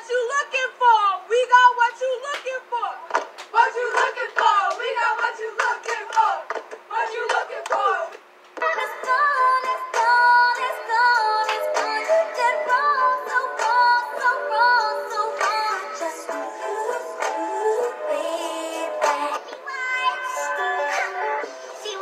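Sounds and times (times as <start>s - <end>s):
music with long sung notes: 8.7s - 19.4s.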